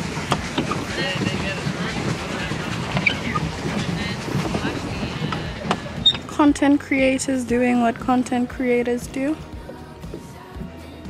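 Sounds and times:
water splashing against plastic boat: 0.0 - 11.0.

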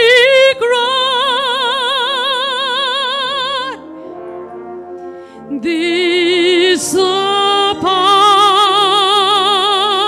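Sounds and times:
soprano singing with vibrato: 0.0 - 3.8, 5.5 - 10.0
brass band sustained chords: 0.6 - 10.0.

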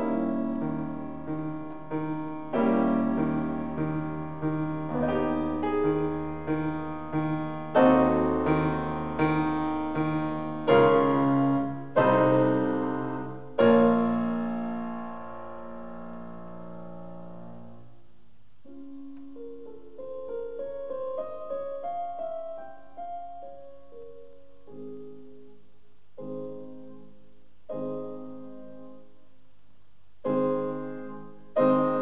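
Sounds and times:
classical piano playing: 0.0 - 18.0, 18.6 - 25.6, 26.2 - 29.3, 30.2 - 32.0.

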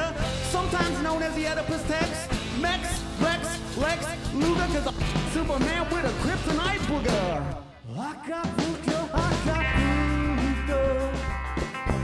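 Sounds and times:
electric guitars: 0.0 - 7.9, 8.5 - 12.0
bass guitar: 0.0 - 12.0
drums: 0.0 - 12.0
keyboards: 0.0 - 12.0.

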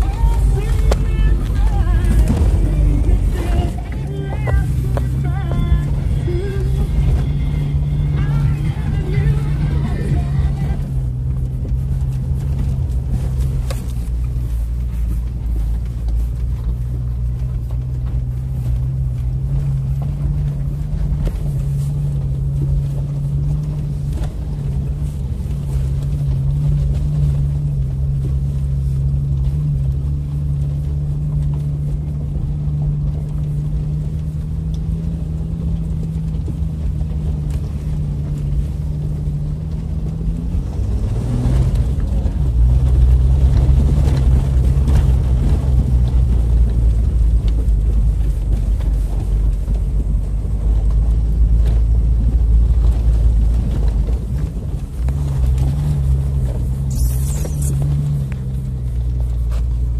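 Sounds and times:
car engine running inside cabin: 0.0 - 59.9.

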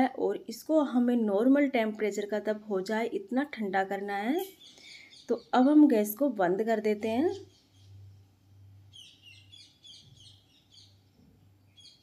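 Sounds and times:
faint low steady hum: 0.0 - 12.0
bird chirping: 4.5 - 5.8, 7.0 - 12.0.

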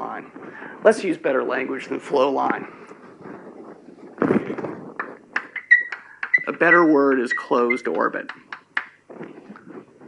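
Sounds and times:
high-pitched whistling squeal: 5.5 - 8.0
sharp taps: 7.8 - 9.0.

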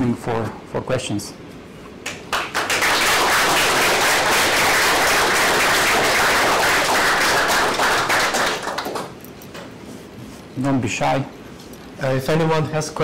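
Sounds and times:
audience applauding: 2.1 - 9.2.

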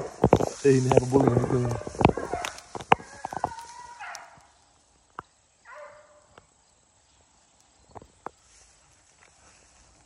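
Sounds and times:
distant dog baying: 1.1 - 4.5, 5.6 - 6.4.

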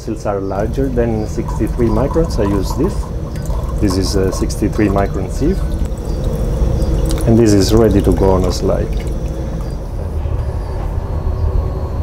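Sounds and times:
faint steady hum: 0.0 - 12.0
low rumble of ship machinery: 0.0 - 12.0.

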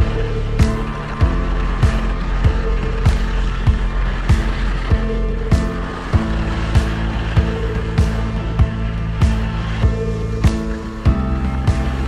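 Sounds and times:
deep drum beat: 0.0 - 12.0.

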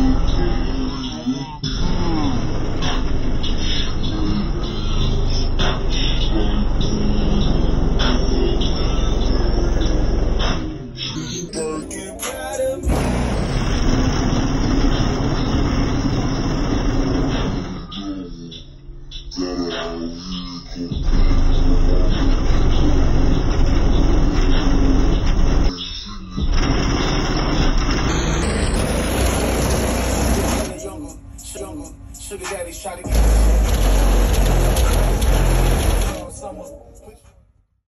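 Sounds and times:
bass-heavy car stereo music: 0.0 - 16.6, 17.2 - 37.2.

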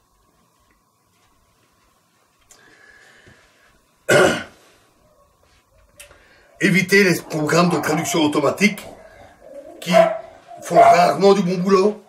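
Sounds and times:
man clearing throat: 4.1 - 4.6.

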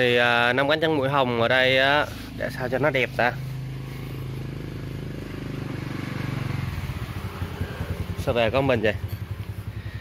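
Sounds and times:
engine running at low revs: 1.4 - 10.0.

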